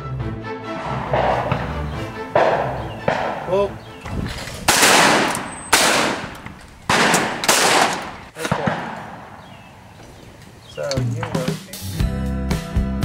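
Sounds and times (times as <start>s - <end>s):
shotgun shots: 0.8s - 9.8s.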